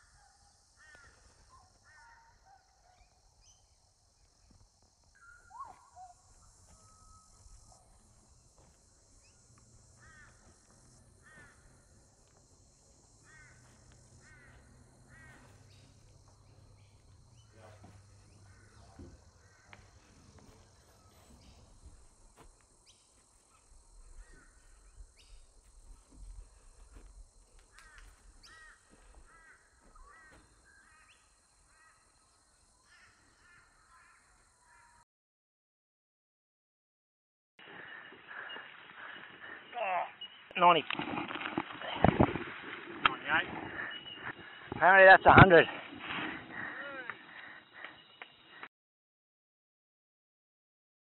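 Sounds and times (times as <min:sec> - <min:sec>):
birds chirping: 0:00.0 - 0:32.4, 0:37.6 - 0:41.0, 0:42.9 - 0:48.7.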